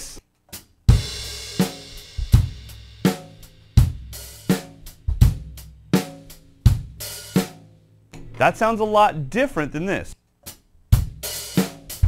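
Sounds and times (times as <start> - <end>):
drum kit slow beat: 0.5 - 8.4, 10.5 - 12.0.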